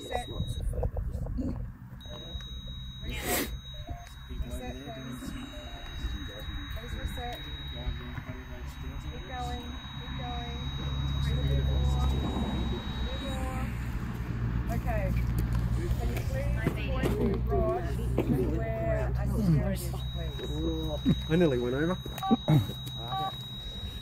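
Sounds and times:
high-pitched electronic tone: 0.0s - 0.8s, 2.0s - 15.0s, 19.2s - 24.0s
people talking quietly: 0.0s - 24.0s.

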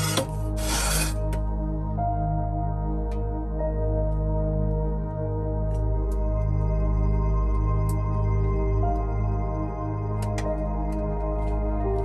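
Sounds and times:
iron pan scraping across stone: 0.0s - 1.2s
soft background music: 0.0s - 12.0s.

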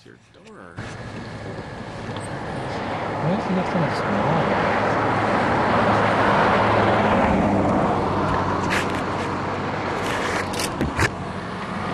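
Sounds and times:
road vehicle rushing noise: 0.8s - 11.9s.

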